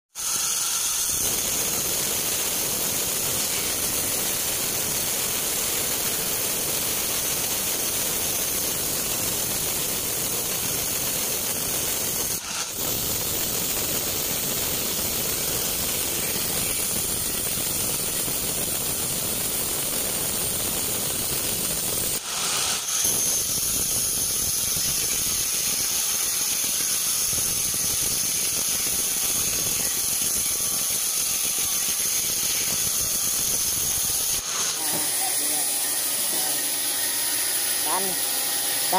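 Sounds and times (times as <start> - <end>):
band saw cutting log: 0.1 - 18.4, 22.1 - 38.9.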